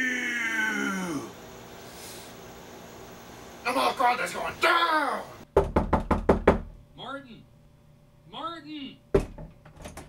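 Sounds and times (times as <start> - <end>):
person calling out: 0.0 - 1.4, 4.5 - 5.4
quick knocking on a door: 5.5 - 6.8.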